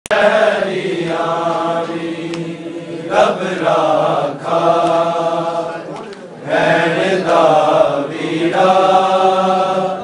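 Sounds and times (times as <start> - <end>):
men chanting a lament: 0.1 - 10.0.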